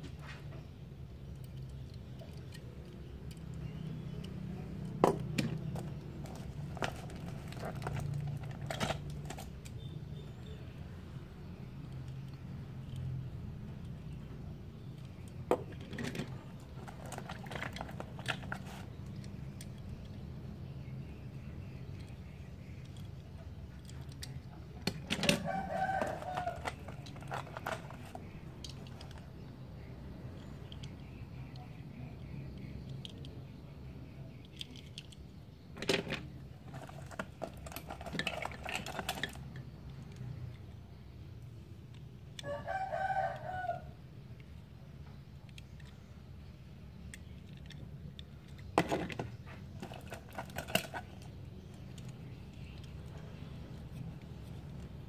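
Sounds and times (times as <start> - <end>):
clicks of toy cars handled: 15.0 - 20.2, 23.8 - 29.3, 34.3 - 40.6, 47.0 - 55.0
rooster crowing: 25.3 - 27.0, 42.4 - 44.0.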